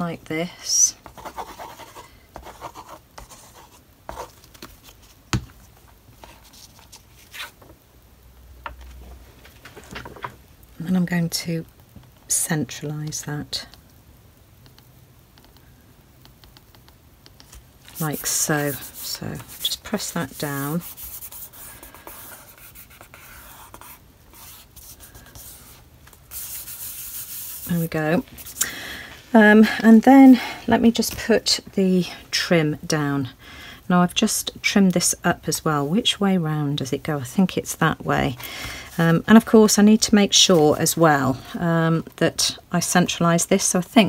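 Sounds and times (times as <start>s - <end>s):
light scratching on paper: 1.0s - 5.1s, 17.4s - 28.6s.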